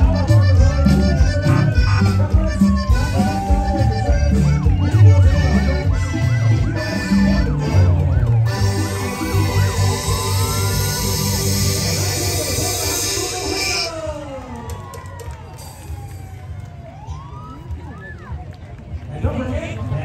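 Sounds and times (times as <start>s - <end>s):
music with heavy bass beat: 0.0s - 13.8s
siren winding down and up: 2.6s - 14.0s.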